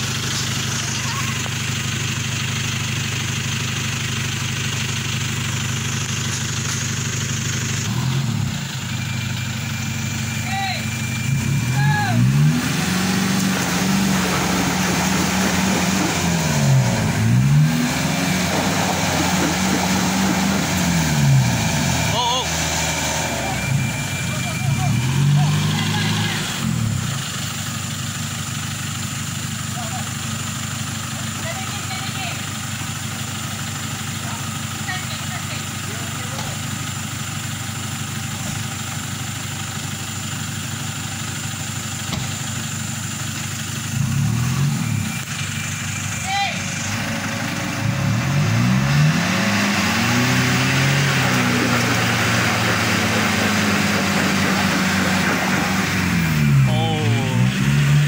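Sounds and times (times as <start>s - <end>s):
truck engines idling and revving: 0.0s - 58.0s.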